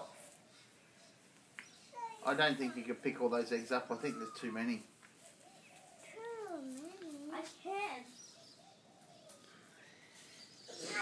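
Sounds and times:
child speaking: 2.0s - 2.2s, 6.0s - 8.2s, 10.8s - 11.0s.

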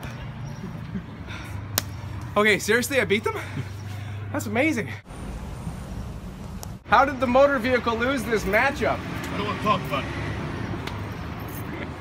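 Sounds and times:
traffic hum: 0.0s - 12.0s.

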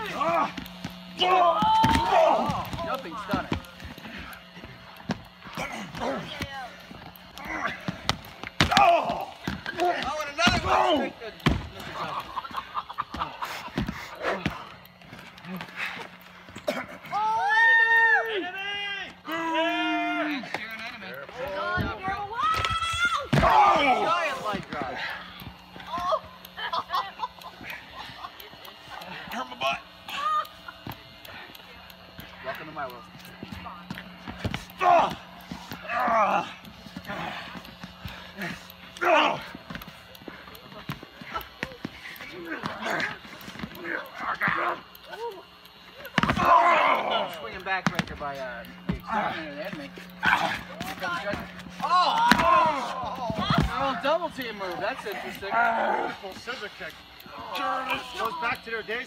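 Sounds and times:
men shouting and crying out: 0.0s - 6.5s, 7.1s - 20.6s, 21.4s - 26.5s, 33.2s - 48.2s, 48.8s - 58.8s
steady low hum: 0.0s - 59.0s.

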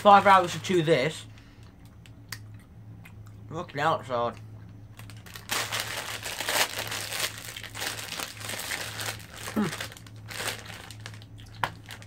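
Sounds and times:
plastic packet crinkling: 0.0s - 0.9s, 5.0s - 12.0s.

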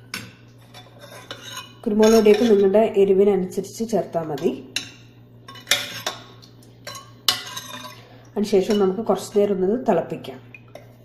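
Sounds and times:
metal spoon clinking on a pot: 0.1s - 2.6s, 4.4s - 8.0s, 8.6s - 9.4s.

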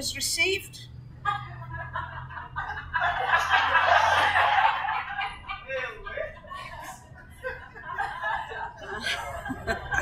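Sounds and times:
people laughing: 1.2s - 10.0s.

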